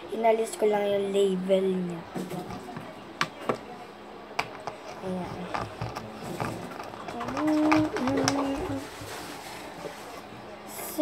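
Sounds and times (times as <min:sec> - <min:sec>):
plastic bottles clicking and knocking: 0:04.4 - 0:09.0.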